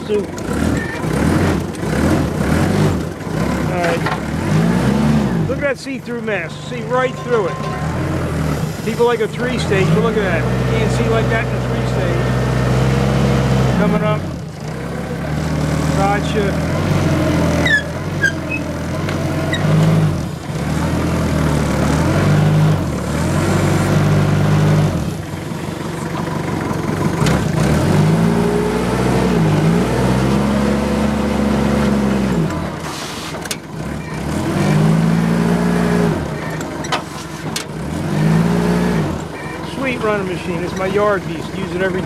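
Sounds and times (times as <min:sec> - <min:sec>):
forklift engine revving: 0:00.0 - 0:42.0.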